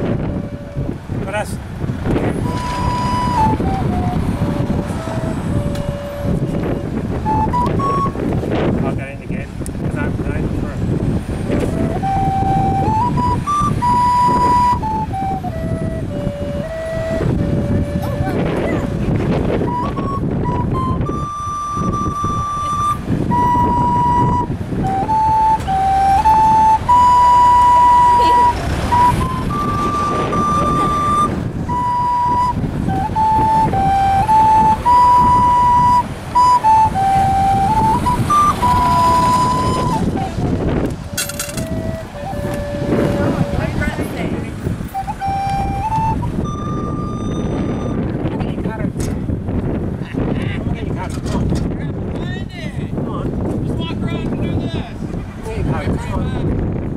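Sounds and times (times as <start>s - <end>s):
tin whistle slow melody: 0.0s - 1.0s, 2.4s - 8.3s, 11.5s - 43.9s, 44.8s - 48.0s
low rumble of street traffic: 0.0s - 56.9s.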